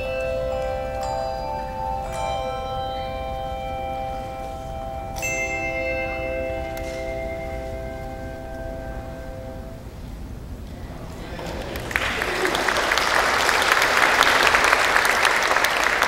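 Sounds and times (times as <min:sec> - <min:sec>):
handbell chords ringing: 0:00.0 - 0:09.8.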